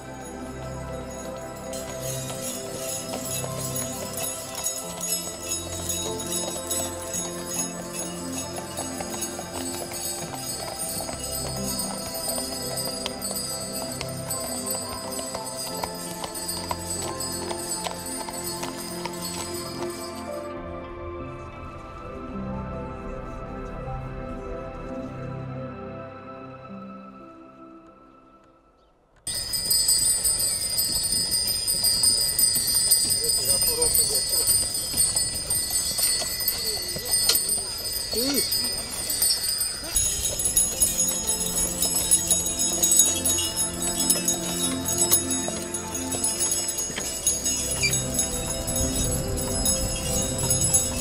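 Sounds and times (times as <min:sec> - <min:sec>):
hooves clopping on snow: 0:00.0 - 0:20.5, 0:29.2 - 0:51.0
jingling bells: 0:00.0 - 0:20.6, 0:29.3 - 0:51.0
background music: 0:00.0 - 0:51.0.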